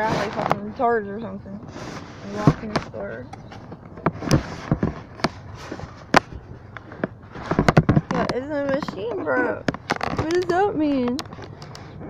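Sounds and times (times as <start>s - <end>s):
phone handling clicks and knocks: 6.1s - 11.8s.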